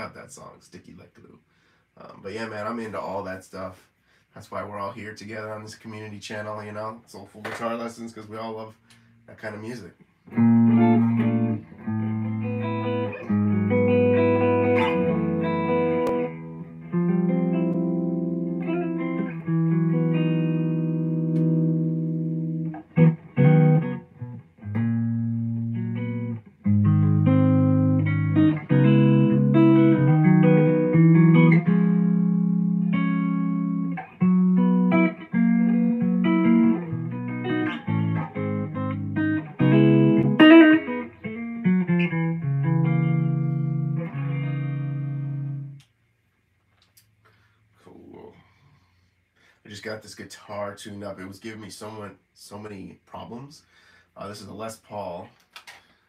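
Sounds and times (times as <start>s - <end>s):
electric guitar chords: 10.3s - 45.8s.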